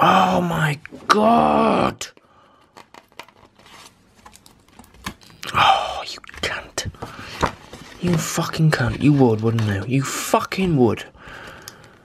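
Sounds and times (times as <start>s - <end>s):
paper folder rustling: 2.8s - 5.3s, 6.9s - 10.9s.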